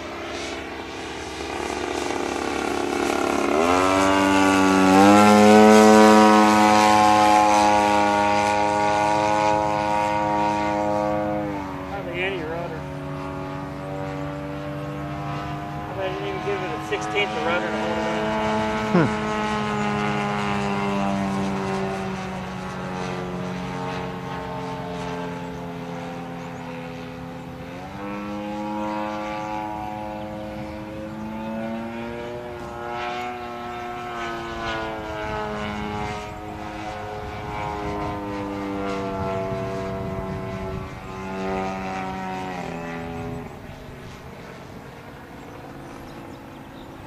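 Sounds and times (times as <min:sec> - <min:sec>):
model plane engine and propeller: 0:00.0 - 0:47.0.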